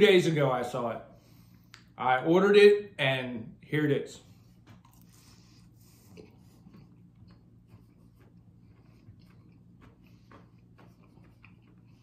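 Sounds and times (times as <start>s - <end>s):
low steady hum: 0.0s - 12.0s
chewing crunchy food: 4.6s - 12.0s.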